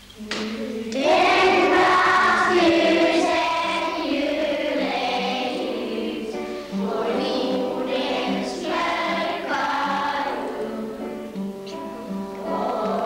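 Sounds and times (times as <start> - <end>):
children's choir singing: 0.0 - 13.0.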